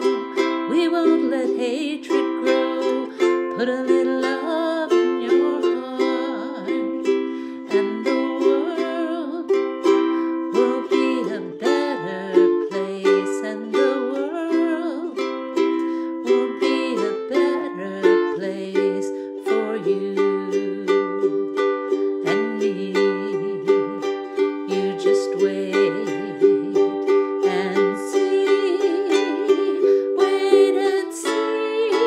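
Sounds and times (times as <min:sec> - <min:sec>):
ukulele strummed: 0:00.0 - 0:32.0.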